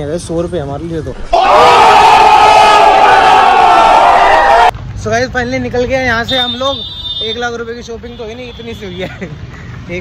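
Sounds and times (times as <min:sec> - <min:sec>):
crowd shouting a long cry: 0:01.2 - 0:04.7.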